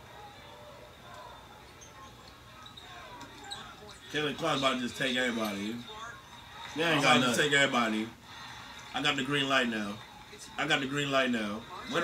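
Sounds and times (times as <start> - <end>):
faint commentary speech: 0.0 - 12.0.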